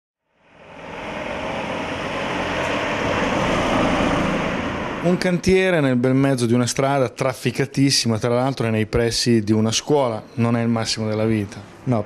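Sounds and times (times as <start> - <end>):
car passing by: 0.3 - 5.5.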